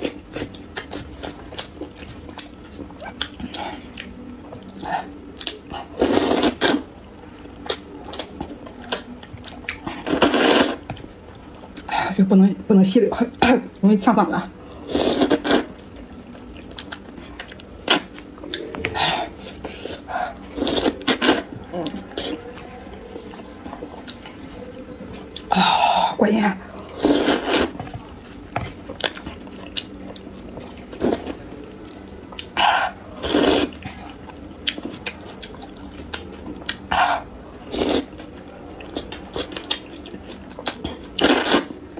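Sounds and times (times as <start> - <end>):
chewing: 0.0 - 11.9, 14.7 - 25.5, 26.8 - 41.9
slurping noodles: 5.9 - 6.9, 10.0 - 10.8, 27.0 - 27.8, 32.9 - 34.1, 41.2 - 41.8.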